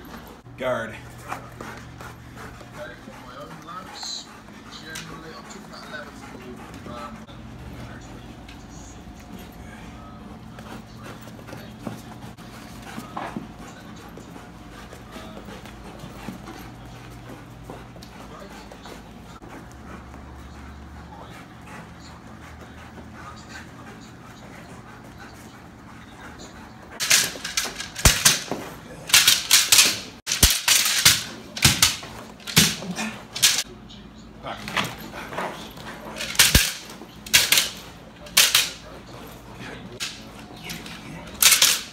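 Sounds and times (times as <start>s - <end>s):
dog panting: 0.0s - 41.9s.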